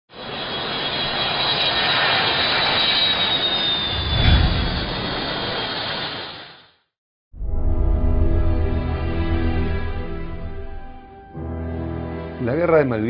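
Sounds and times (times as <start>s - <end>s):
high turbine whine: 0.1s - 6.7s
jet engines running: 0.1s - 6.8s
deep rumble: 3.9s - 5.6s.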